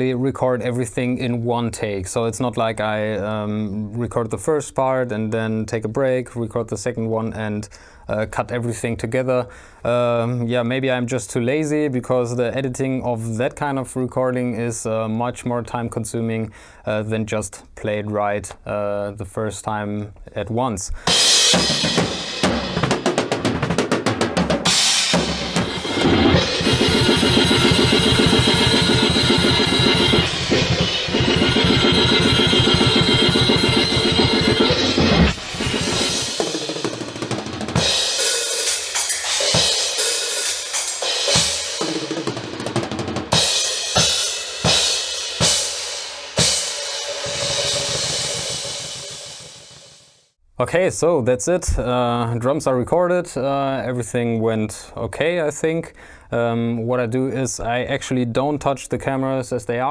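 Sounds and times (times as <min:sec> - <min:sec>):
fast metal drumming: 0:21.1 - 0:50.2.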